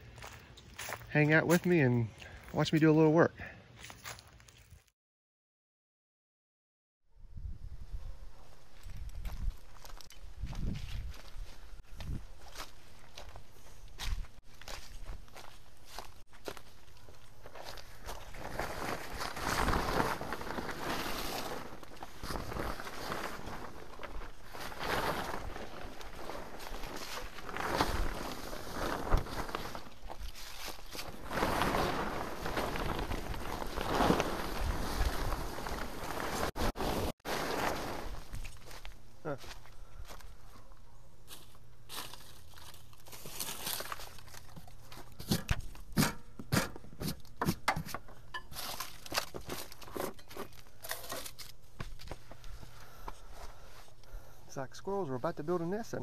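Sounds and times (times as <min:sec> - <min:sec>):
footsteps crunching on dry leaves: 0:00.0 - 0:02.6, 0:03.8 - 0:04.9, 0:08.8 - 0:40.5, 0:41.2 - 0:45.8
fabric cover rustling: 0:17.7 - 0:38.9.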